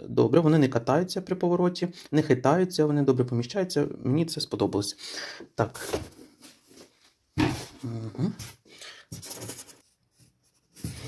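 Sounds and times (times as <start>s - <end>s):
man speaking indistinctly: 0.0s - 5.0s, 5.6s - 6.1s.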